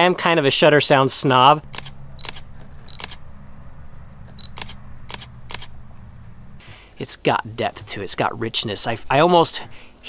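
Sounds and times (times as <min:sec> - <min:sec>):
camera shutter firing: 0:01.6 - 0:03.2, 0:04.3 - 0:05.8.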